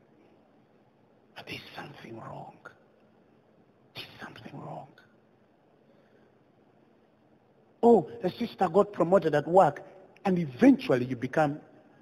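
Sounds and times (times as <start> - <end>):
faint hiss: 0.0 - 12.0
man whispering: 1.3 - 2.9, 3.9 - 5.2.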